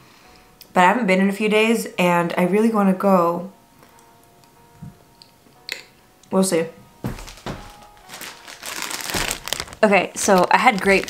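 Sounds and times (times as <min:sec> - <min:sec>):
plastic bag crinkling: 0:07.1 - 0:11.0.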